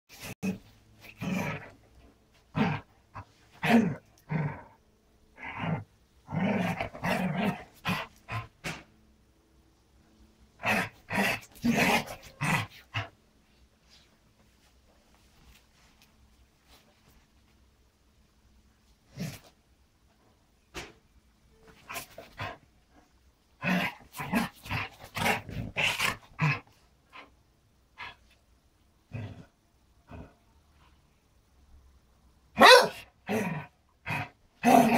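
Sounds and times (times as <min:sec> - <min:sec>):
dog making rough vocal sounds: 0:10.6 - 0:13.1.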